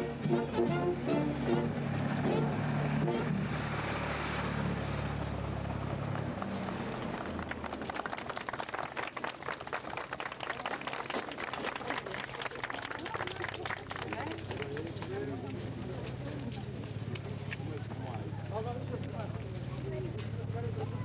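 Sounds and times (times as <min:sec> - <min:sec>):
brass band playing: 0:00.0 - 0:03.4
voices: 0:04.7 - 0:21.0
crowd applauding: 0:05.4 - 0:15.7.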